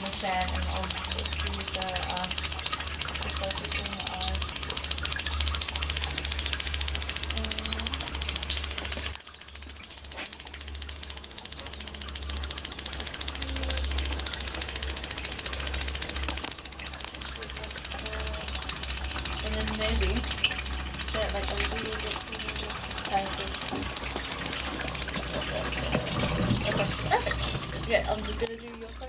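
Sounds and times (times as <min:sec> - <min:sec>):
machine humming and rattling: 0:00.0 - 0:29.0.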